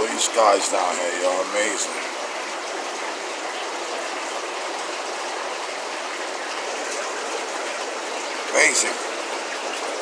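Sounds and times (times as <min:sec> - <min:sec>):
running and splashing water: 0:00.0 - 0:10.0.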